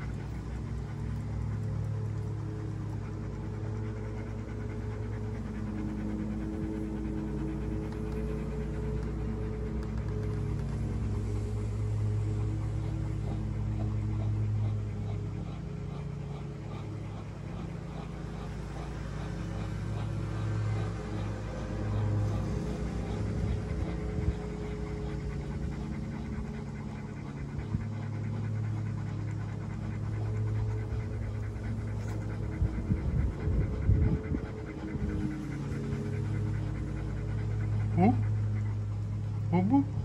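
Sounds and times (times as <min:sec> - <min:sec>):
dogs panting: 0:00.0 - 0:40.0
low hum: 0:00.0 - 0:40.0
dog whining: 0:29.9 - 0:39.9.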